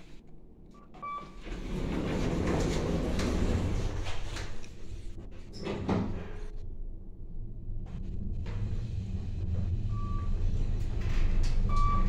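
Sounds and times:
elevator button beep: 0.8s - 1.4s, 11.7s - 12.0s
elevator doors sliding shut: 1.0s - 6.5s, 8.4s - 12.0s.

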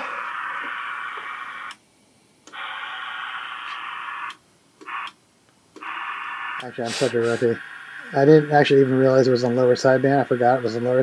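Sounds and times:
radio static hiss: 0.0s - 1.8s, 2.4s - 11.0s.

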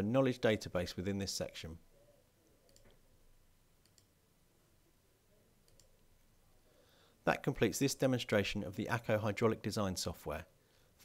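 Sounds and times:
computer mouse clicks: 2.4s - 3.0s, 3.8s - 4.1s, 5.6s - 6.0s.

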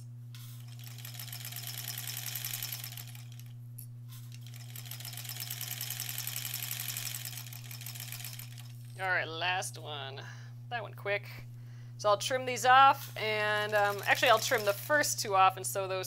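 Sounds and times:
steady low hum: 0.0s - 16.0s
sewing machine stitching: 0.4s - 3.5s, 4.3s - 8.7s, 13.3s - 14.9s.

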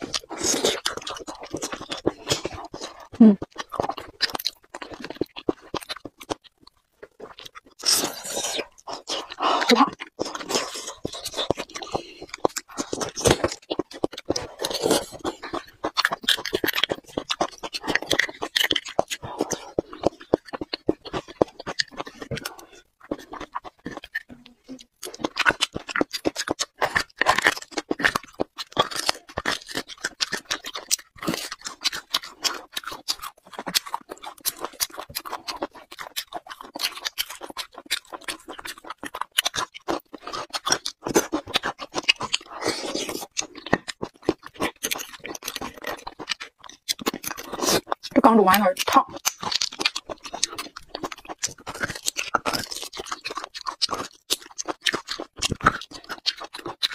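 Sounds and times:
wet chewing: 0.0s - 56.9s.

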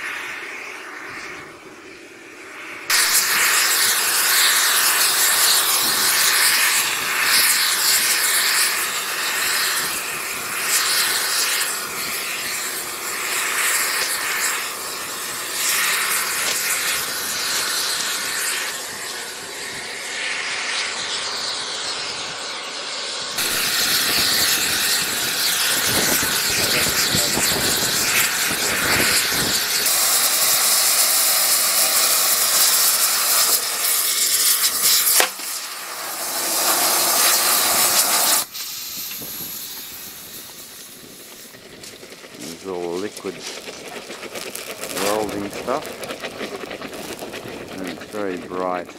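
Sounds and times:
gas torch hissing roar: 0.0s - 48.9s.

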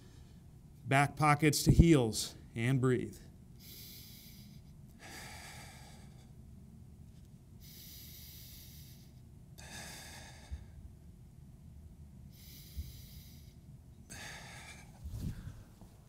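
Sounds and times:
man breathing slowly: 3.6s - 6.4s, 7.6s - 11.0s, 12.3s - 16.0s.

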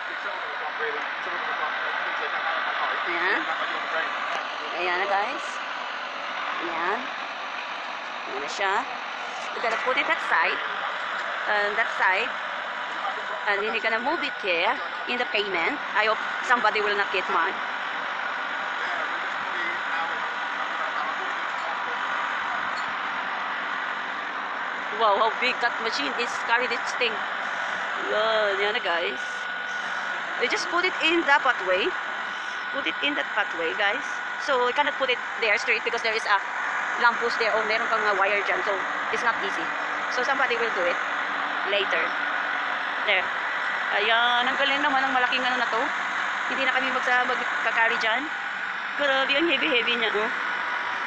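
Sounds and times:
truck engine running: 0.0s - 51.0s.

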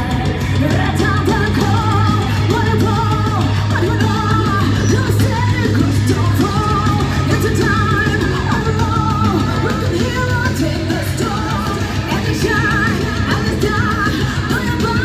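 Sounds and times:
electric guitar: 0.0s - 15.0s
woman singing: 0.0s - 15.0s.

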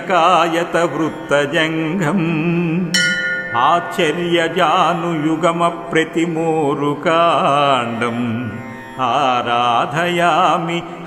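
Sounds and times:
person chanting long ornamented notes: 2.9s - 6.9s
musical accompaniment: 3.0s - 5.2s.

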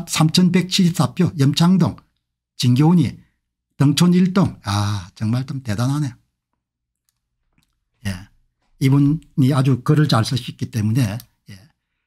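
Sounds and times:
man talking: 0.0s - 3.2s, 3.8s - 6.2s, 8.0s - 11.8s
faint small clicks: 6.5s - 7.9s.

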